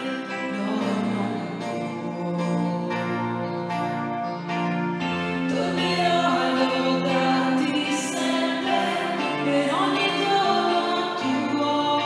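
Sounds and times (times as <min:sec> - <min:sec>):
group singing a hymn: 0:05.5 - 0:12.0.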